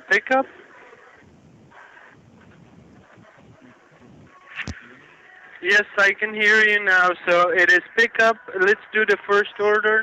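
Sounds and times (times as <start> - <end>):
faint muffled sounds: 0.0 - 10.0.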